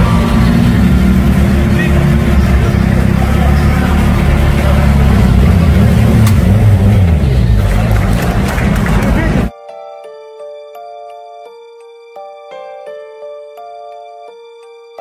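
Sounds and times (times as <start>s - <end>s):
voices: 0.0s - 9.5s.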